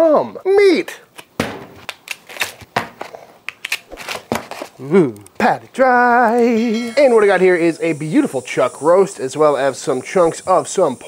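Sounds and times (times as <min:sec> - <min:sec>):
plastic wrap snapping and crackling: 0:01.2 - 0:02.7, 0:03.5 - 0:05.3.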